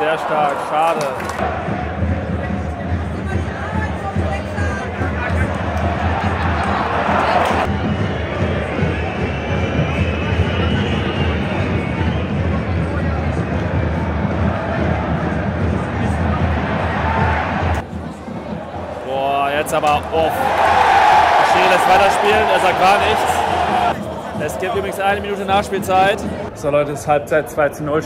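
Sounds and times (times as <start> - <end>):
stadium crowd chanting: 20.5 - 25.2.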